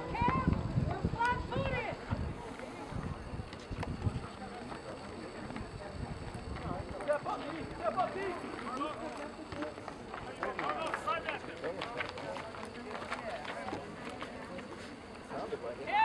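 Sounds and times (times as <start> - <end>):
outdoor background noise: 0.0 - 16.0.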